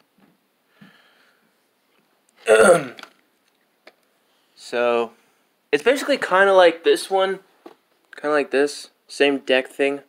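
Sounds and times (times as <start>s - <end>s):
man clearing throat: 2.5s - 3.0s.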